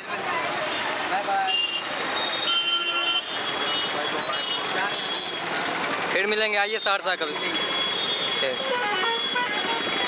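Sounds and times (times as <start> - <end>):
street traffic: 0.0 - 10.0
vehicle horn: 2.4 - 4.0, 7.4 - 10.0.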